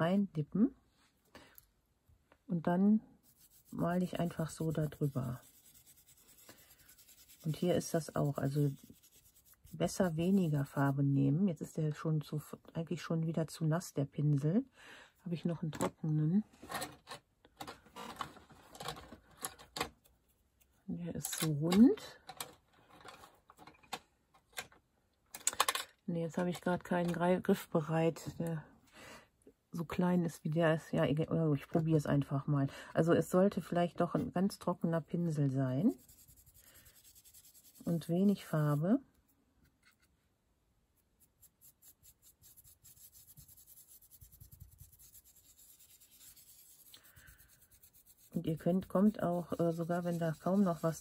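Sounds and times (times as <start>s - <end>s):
paintbrush scratching on stencil: 3.2s - 11.1s, 35.8s - 39.0s, 41.0s - 51.0s.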